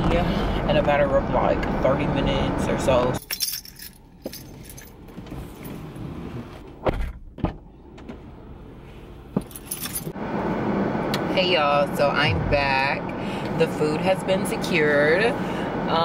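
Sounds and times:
low steady rumble: 0.0s - 16.0s
clicks and rattles in car: 3.2s - 5.8s, 6.5s - 8.3s.

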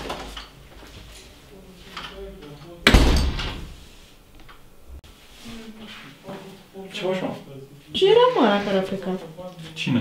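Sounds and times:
metal door slamming: 2.8s - 3.8s.

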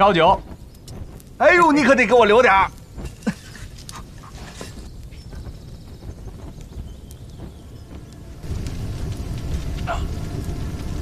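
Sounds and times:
low rumble: 0.0s - 11.0s
wood fire crackling: 0.0s - 11.0s.

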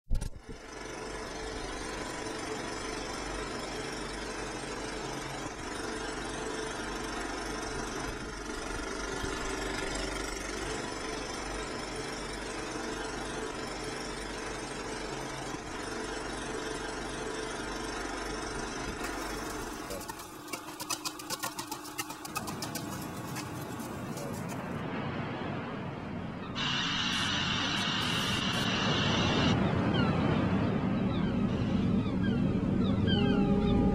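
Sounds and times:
low hum: 0.1s - 33.9s
machine running noise: 0.1s - 33.9s
rapid clicking rattle: 0.2s - 24.7s.

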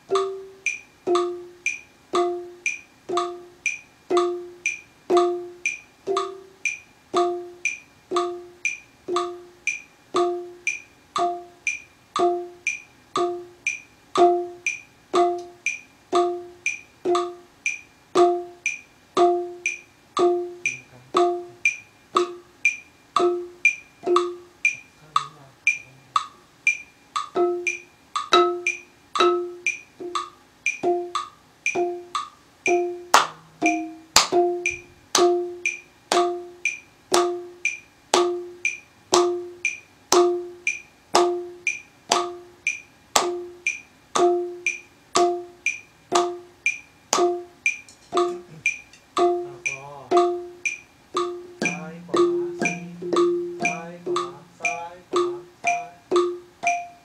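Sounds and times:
wooden xylophone strikes: 0.0s - 57.0s.

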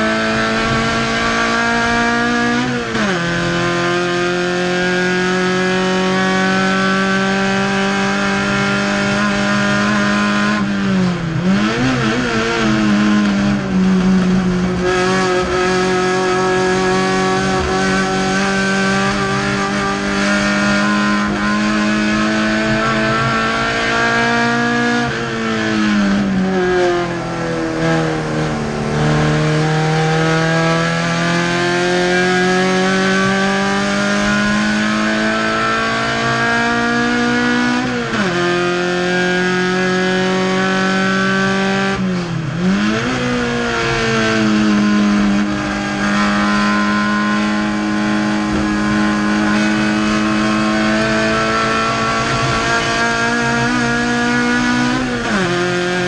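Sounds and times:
race car engine at high revs: 0.0s - 56.0s.

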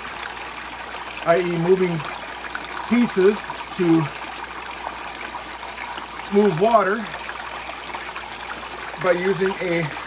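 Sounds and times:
water running and pouring: 0.0s - 10.0s.

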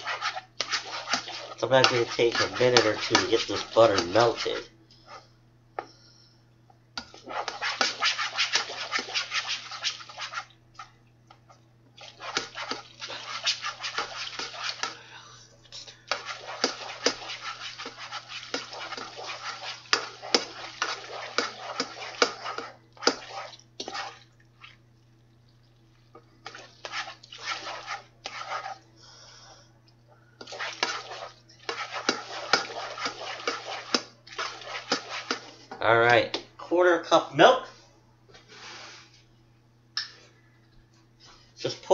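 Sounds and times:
spoon scraping a saucepan: 0.0s - 5.2s, 7.1s - 10.5s, 12.0s - 15.0s, 15.8s - 24.2s, 26.4s - 28.8s, 30.4s - 35.6s
steady low hum: 0.0s - 41.9s.

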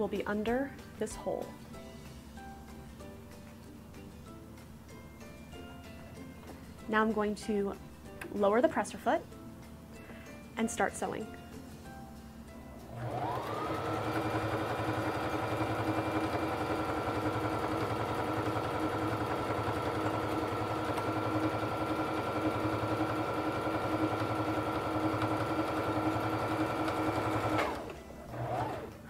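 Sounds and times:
sewing machine stitching: 12.9s - 29.0s.

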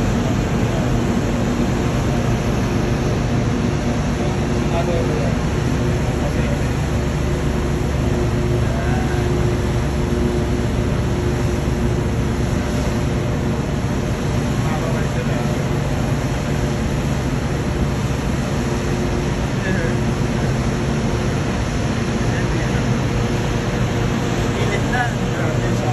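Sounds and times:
ship machinery rumbling drone: 0.0s - 25.9s.

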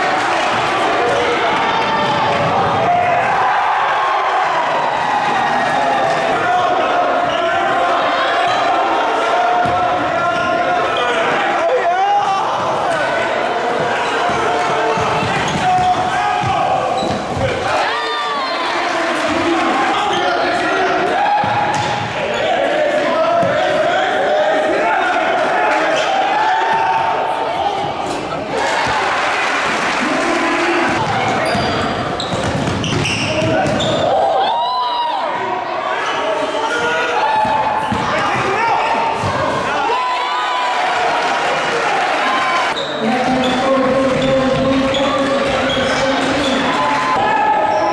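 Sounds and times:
crowd chatter and shouting: 0.0s - 47.9s
sneaker squeaks: 14.9s - 17.5s, 31.0s - 34.1s, 42.7s - 46.7s.

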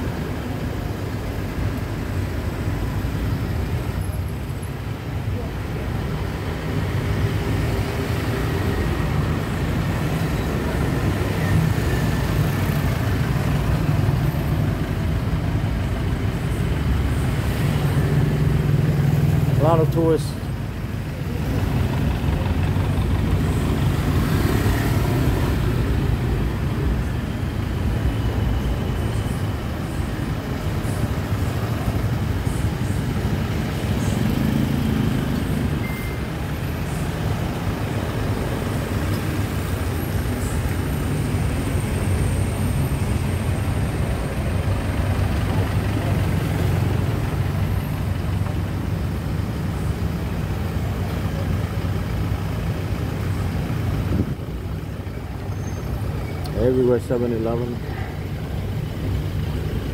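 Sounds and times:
road traffic: 0.0s - 59.9s
truck engine low rumble: 7.8s - 59.9s.

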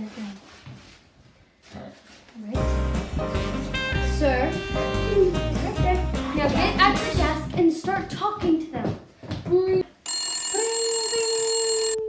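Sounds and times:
telephone ringing: 10.0s - 12.0s.

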